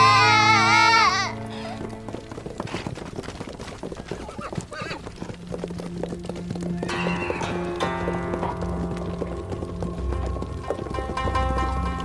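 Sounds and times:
horse whinnying: 0:00.0 - 0:01.8
horse hooves clattering: 0:00.0 - 0:12.0
low film score music: 0:00.0 - 0:12.0.

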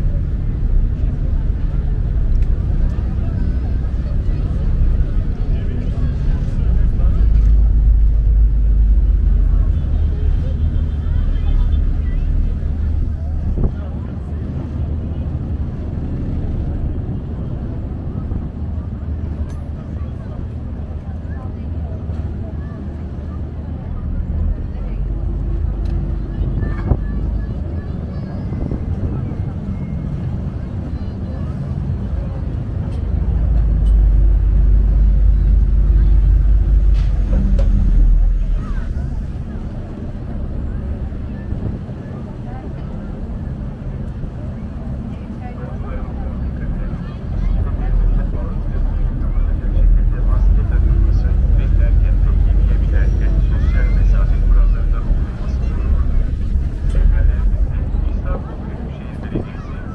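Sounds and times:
chatter of passengers: 0:00.0 - 0:59.9
ferry engines rumbling: 0:00.0 - 0:59.9.

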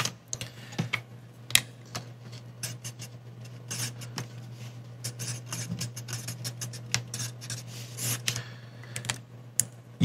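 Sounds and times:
marker scratching on paper: 0:03.7 - 0:04.1, 0:05.0 - 0:08.2.

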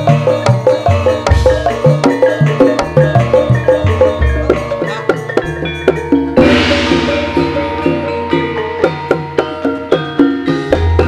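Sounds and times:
pitched percussion struck: 0:00.0 - 0:11.0
cymbal crash: 0:06.4 - 0:10.7.

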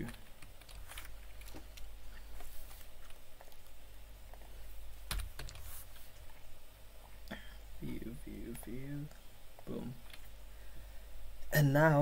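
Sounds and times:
computer keyboard typing: 0:00.0 - 0:01.9
steady low hum: 0:00.0 - 0:12.0.

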